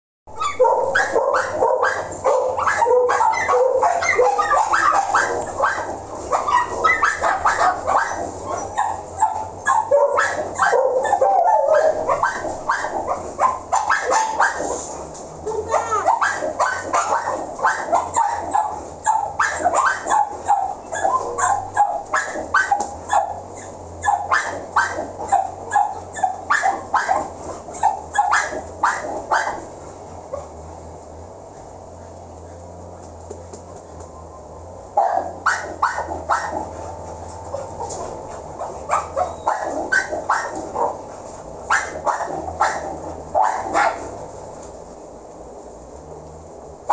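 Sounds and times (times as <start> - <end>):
dogs barking: 0.3 - 30.7, 34.5 - 44.6.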